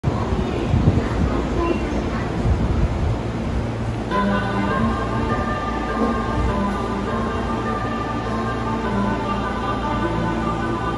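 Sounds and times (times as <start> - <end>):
train low rumble: 0.0 - 10.9.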